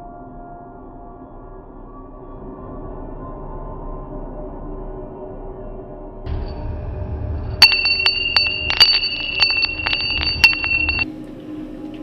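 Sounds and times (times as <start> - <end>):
high bell-like ringing: 7.6 - 11.0.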